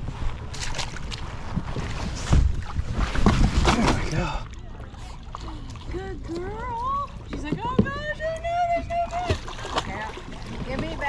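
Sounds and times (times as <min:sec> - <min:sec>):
low rumbling wind: 0:00.0 - 0:11.0
paddleboard handling noise: 0:00.0 - 0:11.0.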